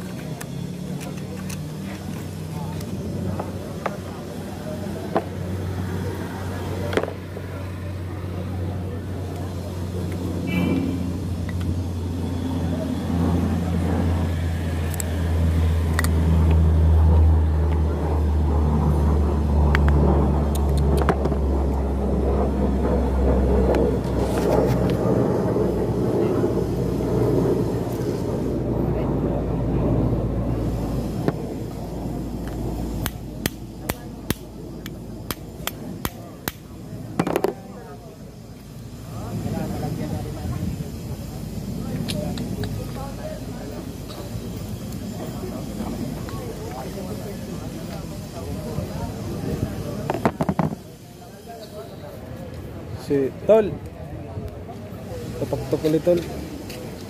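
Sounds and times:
vehicle engine rumbling: 0.0s - 57.0s.

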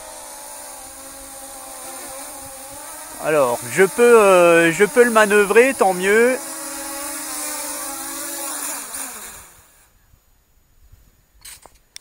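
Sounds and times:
quadcopter motors humming: 0.0s - 9.9s.

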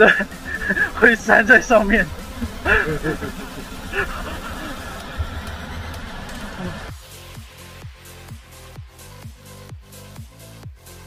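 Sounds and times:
person laughing: 0.0s - 6.9s
waterfall rushing: 0.0s - 6.9s
electronic dance music: 0.0s - 11.0s.

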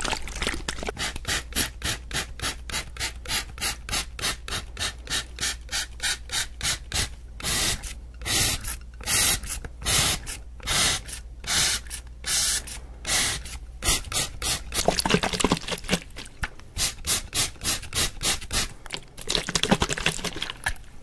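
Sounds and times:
spray bottle hissing: 1.0s - 14.9s, 16.8s - 18.7s.

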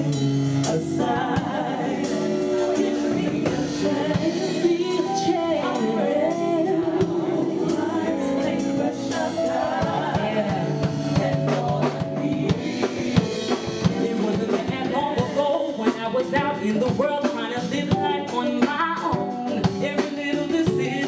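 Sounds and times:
band playing: 0.0s - 21.0s
drum kit steady beat: 0.0s - 21.0s
woman singing into microphone: 0.0s - 21.0s.

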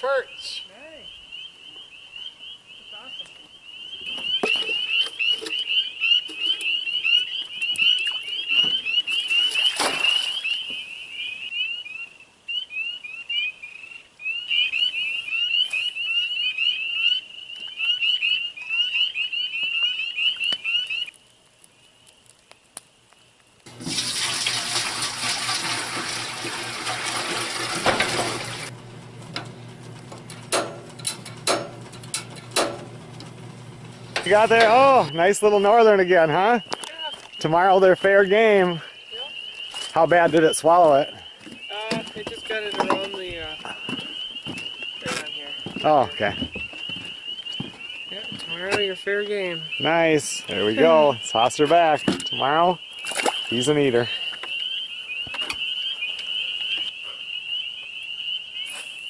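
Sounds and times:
frogs peeping: 0.0s - 23.6s, 34.1s - 59.0s
running water: 23.7s - 28.8s.

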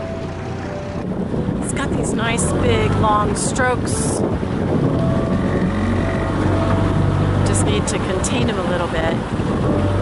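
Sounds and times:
small boat motor running: 0.0s - 10.0s
wind noise on microphone: 0.0s - 10.0s.

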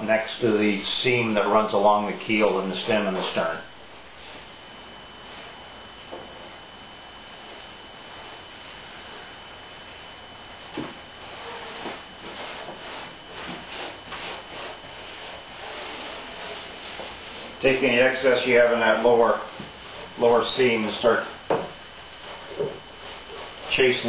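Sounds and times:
steady low hiss: 0.0s - 24.0s
gloved hands rubbing tape: 11.2s - 17.6s, 22.0s - 24.0s.

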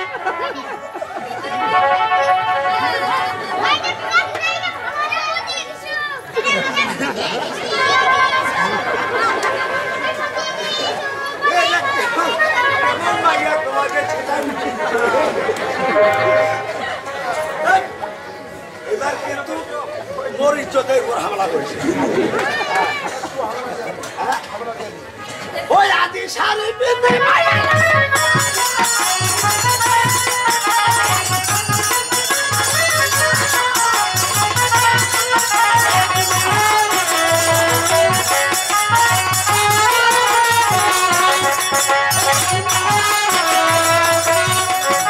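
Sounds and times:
actors declaiming dialogue: 0.0s - 28.1s
crowd chatter: 0.0s - 45.0s.

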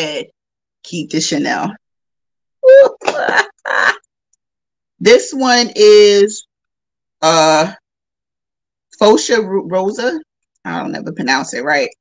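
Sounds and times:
woman laughing: 2.6s - 4.1s.

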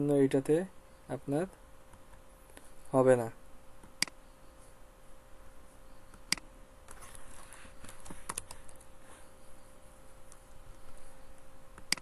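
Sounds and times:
keyboard keystroke clicks: 6.2s - 6.5s, 11.8s - 12.0s.

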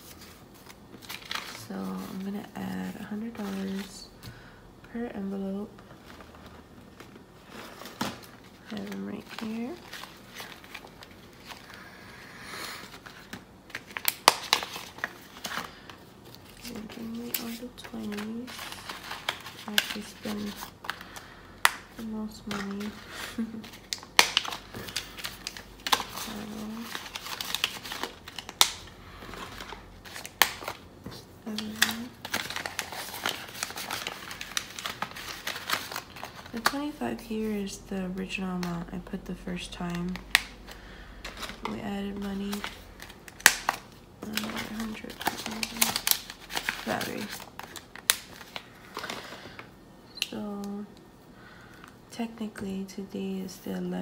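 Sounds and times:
paper and plastic crinkling: 0.0s - 52.0s.

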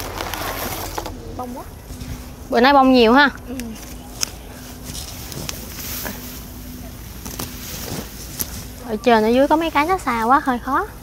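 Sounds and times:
snaps and rustles of vines: 0.0s - 1.2s, 3.3s - 10.6s
distant motor humming: 0.0s - 11.0s.

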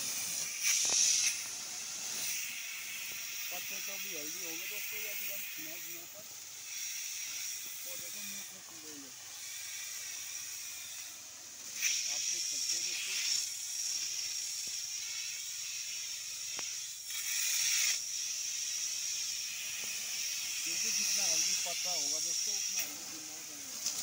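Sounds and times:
spray nozzle hissing: 0.0s - 24.0s.

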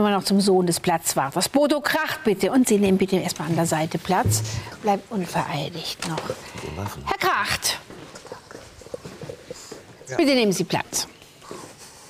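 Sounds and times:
footsteps on hard floor: 4.2s - 4.8s.

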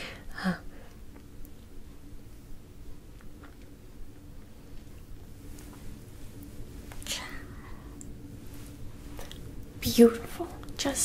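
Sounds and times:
faint steady hum: 0.0s - 11.0s
woman whispering: 7.0s - 7.8s.

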